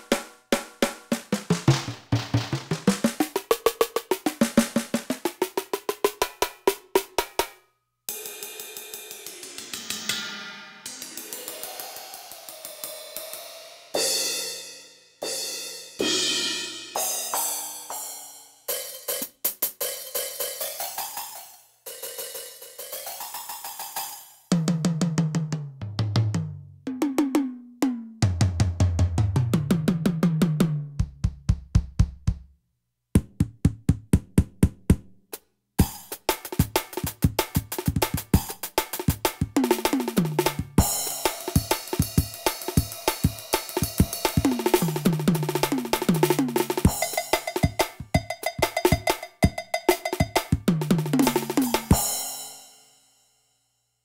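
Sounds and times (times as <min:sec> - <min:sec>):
electronic crash cymbal pitch bending: 0:09.2 - 0:14.6
electronic kick drum: 0:26.4 - 0:32.5, 0:33.2 - 0:35.2, 0:35.8 - 0:52.1.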